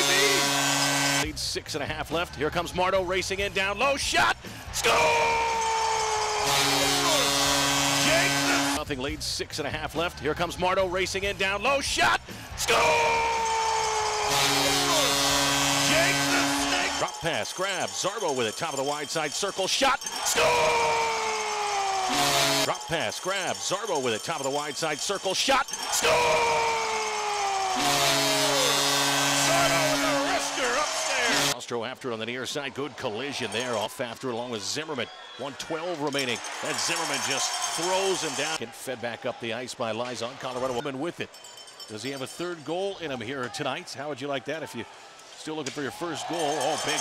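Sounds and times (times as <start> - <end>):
crowd cheering: 0.0 - 1.2, 4.7 - 8.8, 12.5 - 31.6, 32.5 - 40.8, 44.3 - 47.0
arena goal horn: 0.0 - 1.4, 4.9 - 8.9, 12.8 - 31.6.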